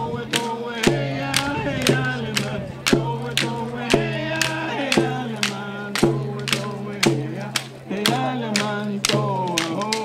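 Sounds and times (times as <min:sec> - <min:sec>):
steady percussion beat: 0:00.0 - 0:10.0
voices singing a chant: 0:00.0 - 0:10.0.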